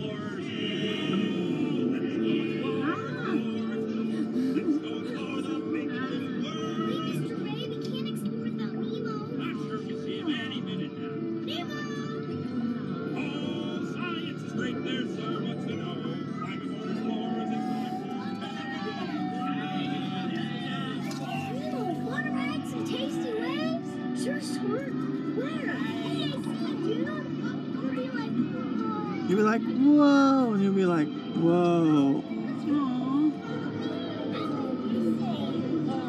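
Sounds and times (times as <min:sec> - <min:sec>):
background music: 0:00.0 - 0:36.0
voices: 0:00.0 - 0:36.0.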